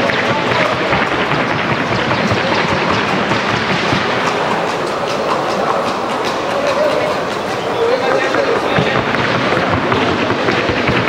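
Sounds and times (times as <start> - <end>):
horse hooves clattering on hard track: 0.0 - 11.0.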